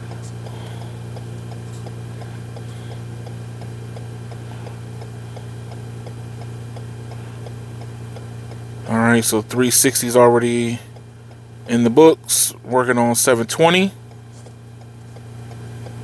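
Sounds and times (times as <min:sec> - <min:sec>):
regular light ticking: 0:00.0 - 0:12.2, 0:13.3 - 0:16.0
steady low hum: 0:00.0 - 0:16.0.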